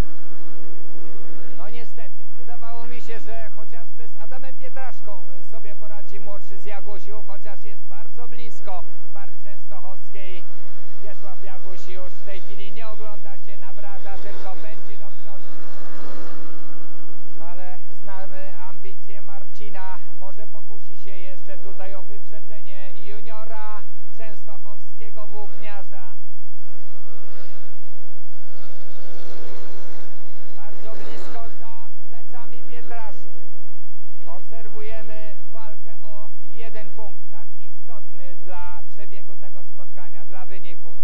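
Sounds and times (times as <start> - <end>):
motorcycles racing: 0.0 - 41.0
man talking: 1.4 - 15.9, 17.3 - 26.2, 30.5 - 33.4, 34.2 - 41.0.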